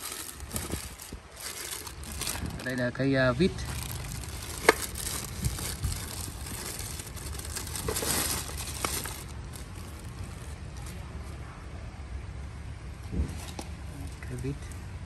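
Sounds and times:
plastic wrapping crinkling: 0:00.0 - 0:11.4.

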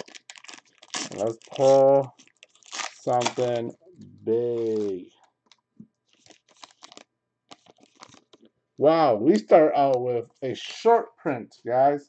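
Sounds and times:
foil pack crinkling: 0:00.0 - 0:03.7, 0:04.4 - 0:08.5.

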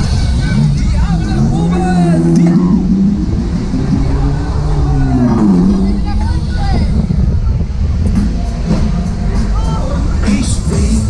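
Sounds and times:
steady low drone: 0:00.0 - 0:11.0
wind rumbling on microphone: 0:00.0 - 0:11.0.

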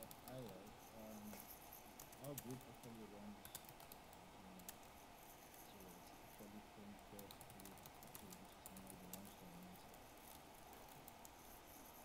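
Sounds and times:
keyboard typing: 0:00.0 - 0:06.5, 0:07.2 - 0:12.0
faint speech over call: 0:05.6 - 0:10.0.

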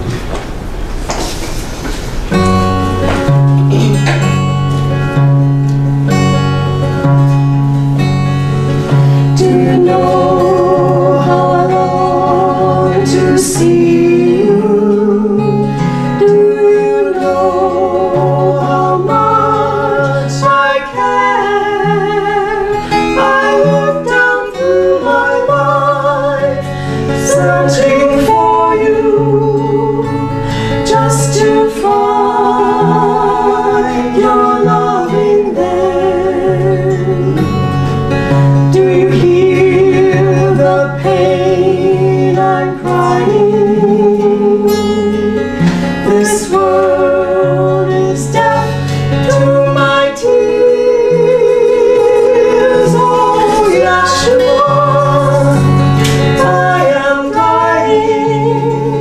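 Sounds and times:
strummed acoustic guitar: 0:00.0 - 0:59.0
women singing together: 0:09.3 - 0:37.7, 0:38.5 - 0:59.0.

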